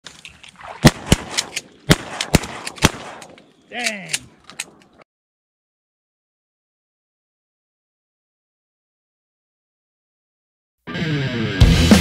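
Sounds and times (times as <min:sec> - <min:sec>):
gunshots with echo: 0:00.8 - 0:03.4.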